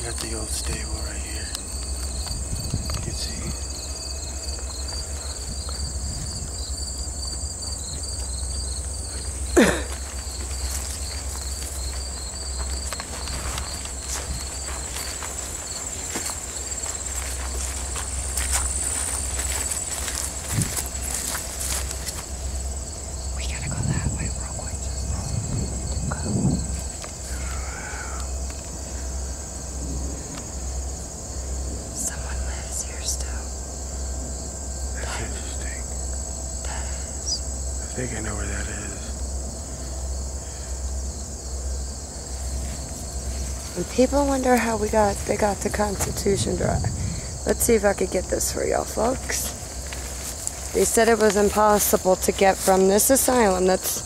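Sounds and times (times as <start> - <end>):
insects chirping: 0.0 - 54.0
steady high buzz: 0.0 - 54.0
footsteps through grass and brush: 3.7 - 23.2, 41.8 - 46.2, 48.9 - 53.7.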